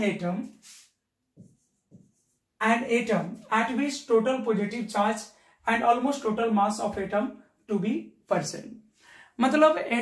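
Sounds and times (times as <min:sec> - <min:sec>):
person speaking: 0:00.0 - 0:10.0
chalk writing on board: 0:00.5 - 0:02.6.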